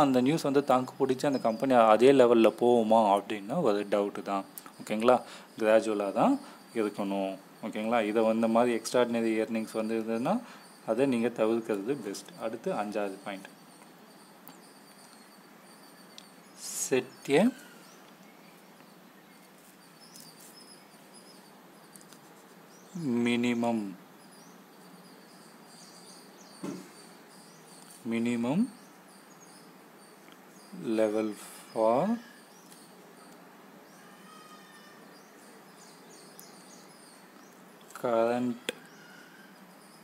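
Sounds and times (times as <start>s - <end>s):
faint background hiss: 0.0s - 40.0s
faint high chirps: 0.0s - 40.0s
small scratchy ticks: 18.0s - 22.8s, 27.7s - 28.0s, 32.6s - 33.4s.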